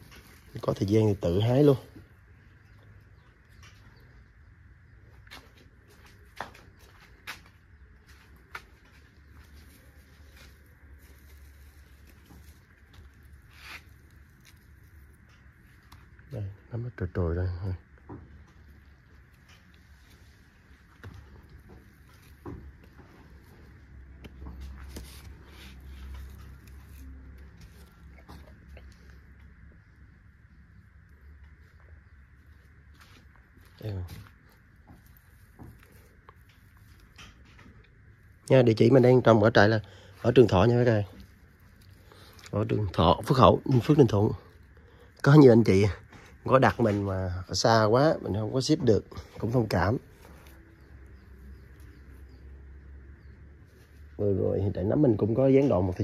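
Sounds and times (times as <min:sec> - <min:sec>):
straw rustling: 0:00.0 - 0:04.1, 0:05.1 - 0:16.7, 0:17.5 - 0:56.0
low steady hum: 0:00.0 - 0:56.0.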